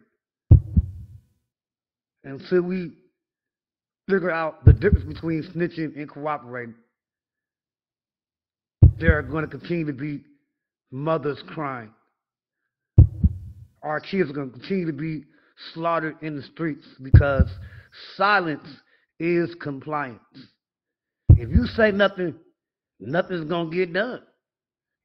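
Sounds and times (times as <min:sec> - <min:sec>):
heartbeat thumps: 0:00.5 - 0:01.2, 0:04.7 - 0:05.4, 0:08.8 - 0:09.5, 0:13.0 - 0:13.8, 0:17.1 - 0:17.8, 0:21.3 - 0:22.0.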